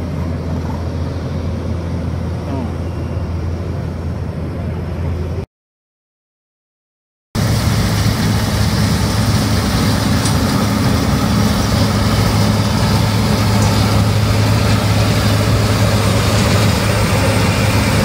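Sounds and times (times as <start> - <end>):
combine harvester engine hum: 0.0 - 5.4, 7.4 - 18.0
constant rushing noise: 7.4 - 18.0.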